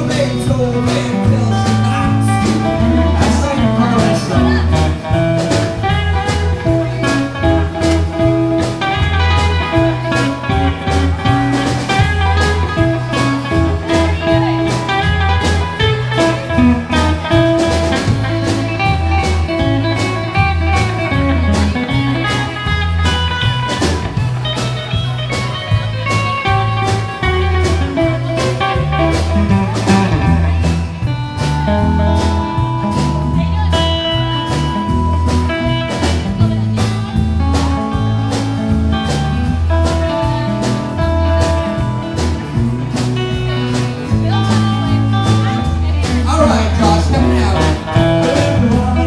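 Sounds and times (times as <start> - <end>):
acoustic rhythm guitar: 0.0 - 49.0
electric bass: 0.0 - 49.0
lead guitar: 0.0 - 49.0
steady drum beat: 0.0 - 49.0.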